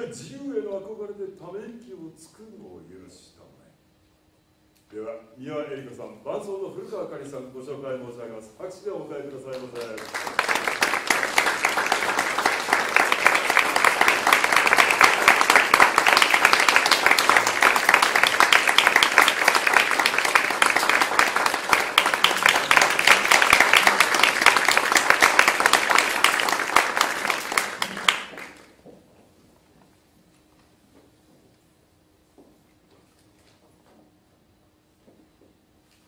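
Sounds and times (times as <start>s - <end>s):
audience applauding: 9.5s - 28.8s.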